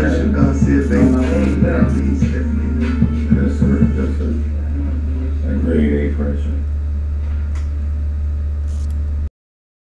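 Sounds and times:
steady low hum: 0.0s - 9.3s.

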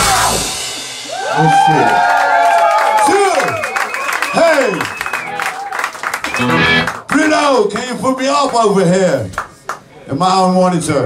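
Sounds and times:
electric guitars sliding notes: 6.2s - 7.0s.

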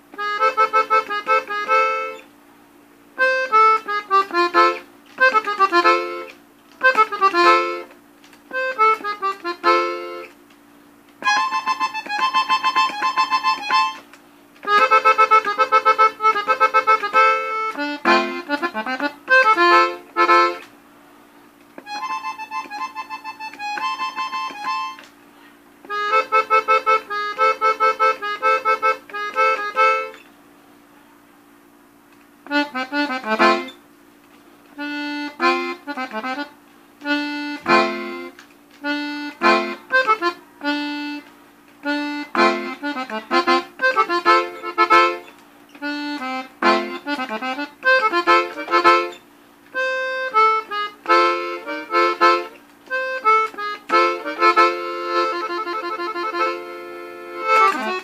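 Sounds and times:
button accordion melody: 0.0s - 2.3s, 3.2s - 10.4s, 11.2s - 20.7s, 21.8s - 25.1s, 25.8s - 30.3s, 32.4s - 33.9s, 34.8s - 58.0s.

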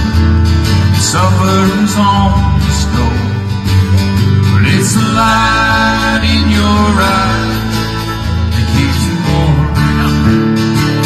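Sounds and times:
electric bass notes: 0.0s - 11.0s
strummed acoustic guitars: 0.0s - 11.0s.

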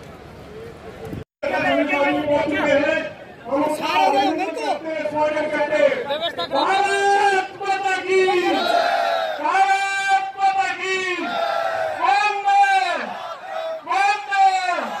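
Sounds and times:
crowd chanting slogans: 8.4s - 9.4s, 11.2s - 12.0s, 13.0s - 13.9s, 14.8s - 15.0s.

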